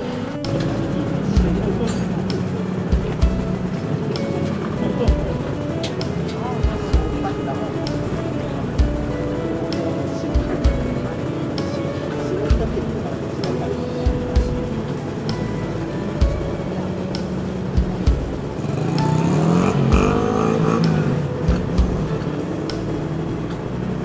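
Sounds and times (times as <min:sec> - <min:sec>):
background music with steady beat: 0:00.0 - 0:24.0
engine revving: 0:10.3 - 0:24.0.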